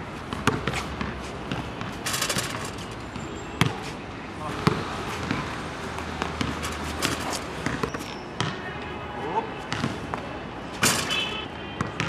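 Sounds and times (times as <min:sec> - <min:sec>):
basketball bouncing on court: 0:00.3 - 0:03.9, 0:04.5 - 0:08.7, 0:09.7 - 0:10.2, 0:10.8 - 0:12.0
basketball rattling hoop: 0:00.4 - 0:03.7, 0:04.6 - 0:08.0, 0:10.8 - 0:11.4.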